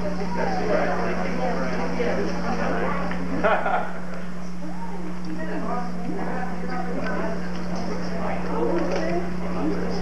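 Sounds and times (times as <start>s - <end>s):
people talking indistinctly: 0.0s - 10.0s
steady low hum: 0.0s - 10.0s.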